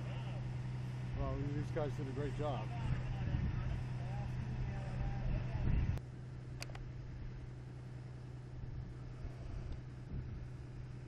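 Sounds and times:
engine idling hum: 0.0 - 11.0.

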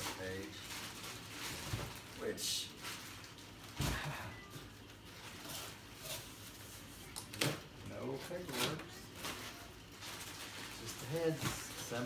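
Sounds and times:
plastic wrapping crackling: 0.0 - 4.2, 4.8 - 12.0.

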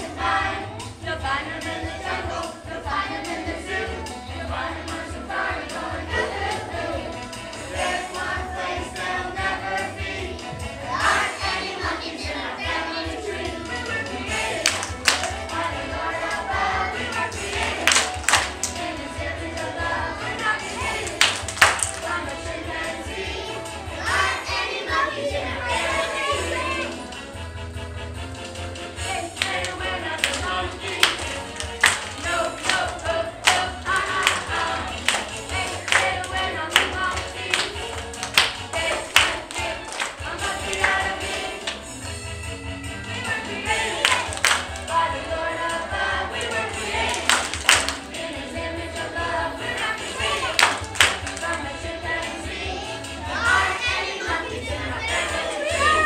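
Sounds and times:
children's choir singing: 0.0 - 27.4, 28.9 - 42.2, 43.0 - 56.0
recorded music backing track: 0.0 - 56.0
loud sharp claps: 14.5 - 15.5, 17.4 - 18.8, 21.0 - 22.2, 29.4 - 41.8, 43.9 - 44.9, 47.0 - 48.1, 50.4 - 51.6.

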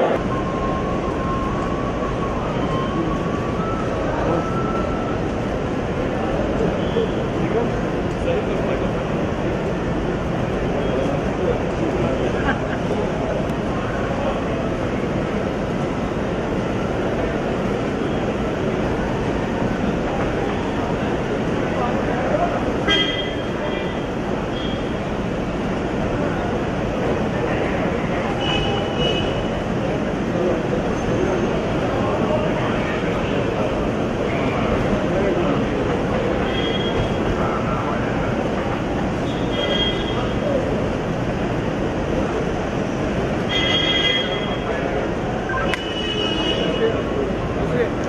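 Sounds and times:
hubbub of voices: 0.0 - 48.0.

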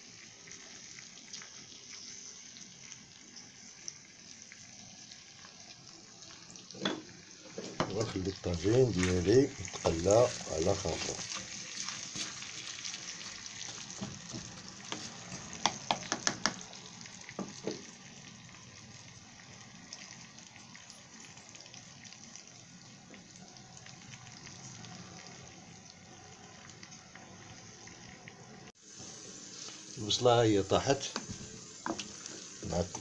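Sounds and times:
meat and onions sizzling: 0.0 - 33.0.

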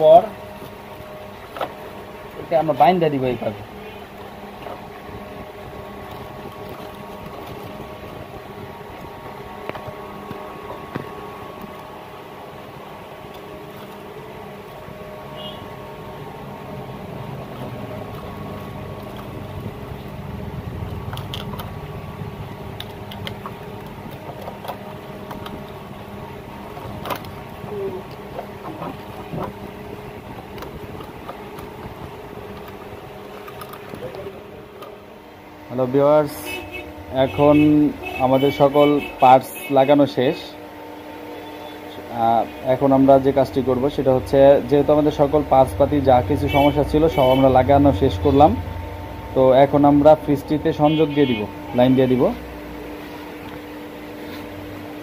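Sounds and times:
handling noises with wiring: 0.0 - 16.2, 17.4 - 40.3
machine hum: 0.0 - 55.0.

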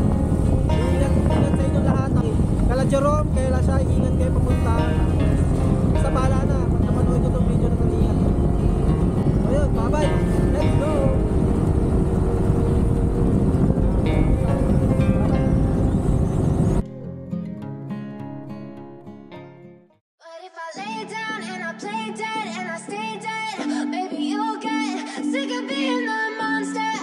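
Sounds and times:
motorcycle road noise: 0.0 - 16.8
wind noise: 0.0 - 16.8.

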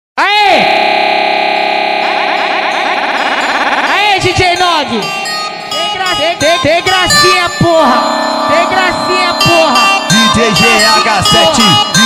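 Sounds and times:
buzzy synthesizer chord: 0.3 - 12.0
fluttering rising synth sweep: 0.7 - 4.4.

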